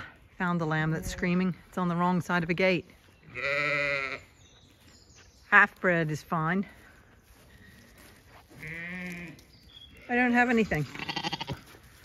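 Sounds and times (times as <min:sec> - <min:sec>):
sheep bleating: 0:03.3 - 0:04.3, 0:08.6 - 0:09.4, 0:10.0 - 0:11.7.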